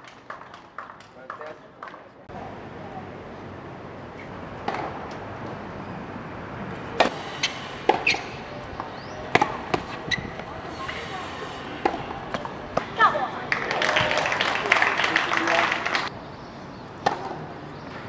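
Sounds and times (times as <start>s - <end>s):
voices murmuring: 1.2s - 16.1s
tennis balls bouncing on hard court: 4.2s - 5.6s, 6.8s - 11.0s, 11.8s - 14.1s, 17.0s - 18.0s
tennis balls struck by rackets: 4.2s - 5.6s, 6.7s - 14.1s, 16.9s - 18.0s.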